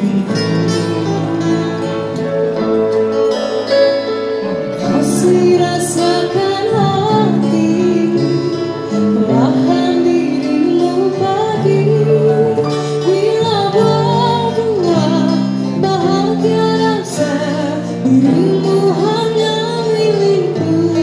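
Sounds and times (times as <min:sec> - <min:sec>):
woman singing: 0:00.0 - 0:02.6, 0:04.8 - 0:21.0
keyboard and guitar: 0:00.0 - 0:21.0.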